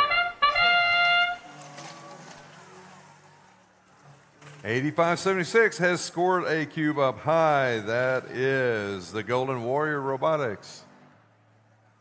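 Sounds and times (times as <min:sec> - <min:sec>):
trumpet fanfare over loudspeakers: 0:00.0 - 0:01.6.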